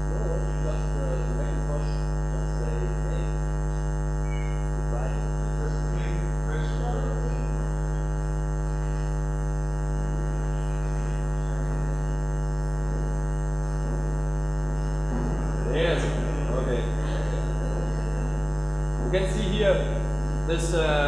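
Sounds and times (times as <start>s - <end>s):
person speaking: 0.0s - 3.4s, 15.1s - 21.0s
electrical mains hum: 0.0s - 21.0s.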